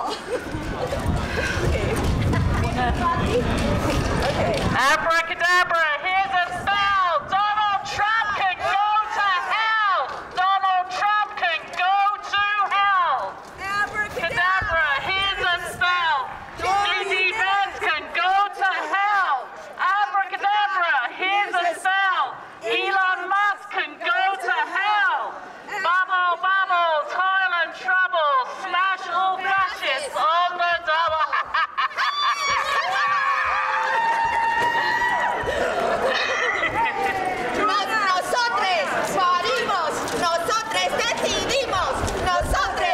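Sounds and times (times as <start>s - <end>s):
group laughing and cackling: 0.0s - 4.7s, 30.7s - 39.9s.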